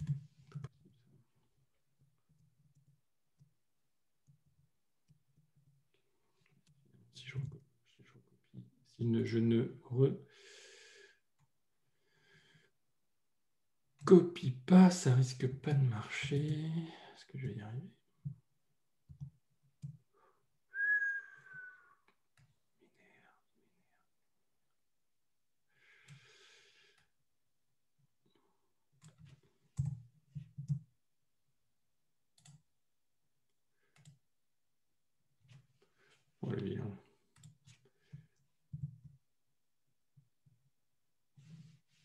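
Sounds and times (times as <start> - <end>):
keyboard and mouse clicks: 19.1 - 20.0, 29.0 - 30.9, 32.4 - 32.6, 33.9 - 34.2
man whistling a short note: 20.7 - 22.0.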